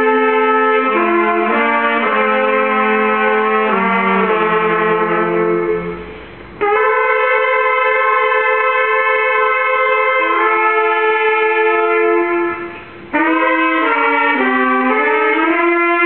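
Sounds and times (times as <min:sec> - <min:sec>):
trumpets and saxophones holding chords: 0:00.0 - 0:16.0.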